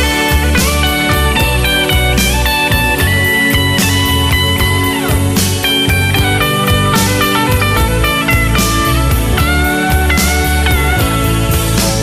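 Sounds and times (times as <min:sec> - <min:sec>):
lead guitar bending notes: 0:00.0 - 0:12.0
pop-rock backing track: 0:00.0 - 0:12.0.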